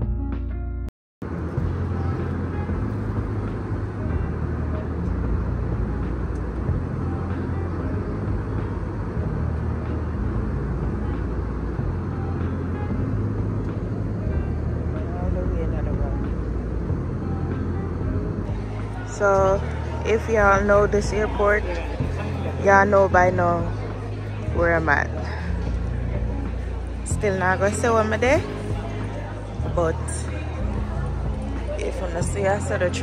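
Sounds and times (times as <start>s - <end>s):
music: 0.0s - 33.0s
airliner cabin rumble: 1.2s - 33.0s.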